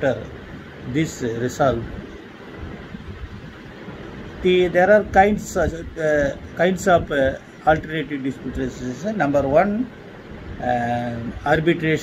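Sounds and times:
light hiss: 0.0s - 12.0s
low uneven rumble: 0.0s - 12.0s.

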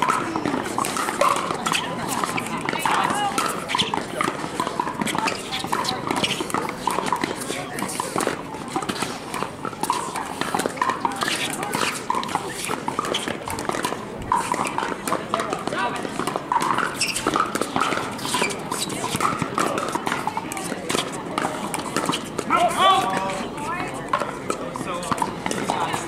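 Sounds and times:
paddles popping a plastic ball: 0.0s - 23.3s
murmur of many voices: 0.0s - 26.0s.

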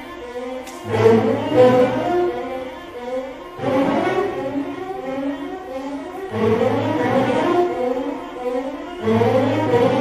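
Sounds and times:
string orchestra bowed chords: 0.0s - 10.0s.

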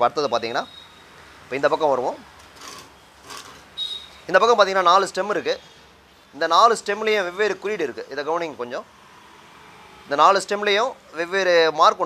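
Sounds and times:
hand scraping metal block: 2.6s - 3.7s.

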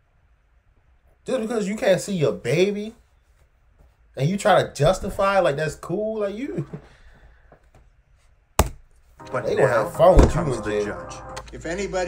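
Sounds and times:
sharp knock: 10.2s - 10.6s.

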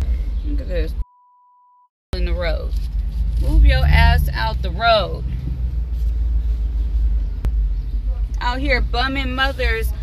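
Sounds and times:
car cabin rumble: 2.2s - 10.0s.

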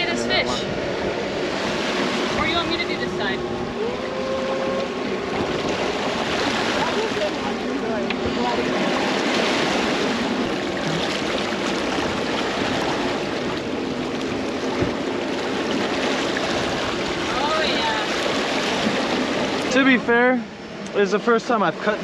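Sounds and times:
sea water rushing along hull: 0.0s - 22.0s.

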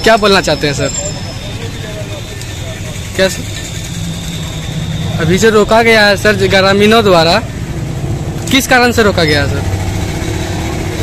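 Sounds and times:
vehicle engine idling: 0.0s - 11.0s.

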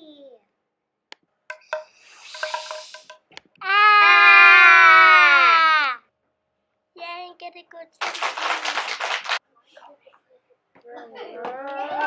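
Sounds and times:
clicks and short sounds: 1.5s - 3.5s
child crying out: 3.6s - 6.0s.

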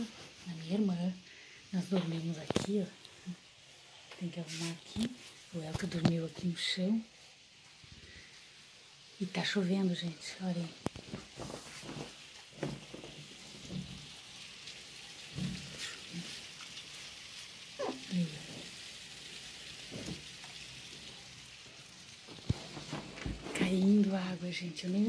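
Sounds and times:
steady rain falling: 0.0s - 25.0s.

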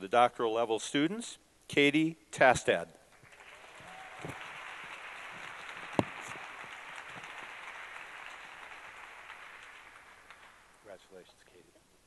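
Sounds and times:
audience applauding: 3.2s - 11.1s.

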